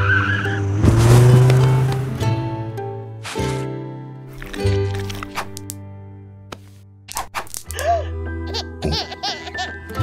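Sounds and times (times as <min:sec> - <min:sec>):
cartoon skid screech: 0:00.0 - 0:00.7
background music: 0:00.0 - 0:10.0.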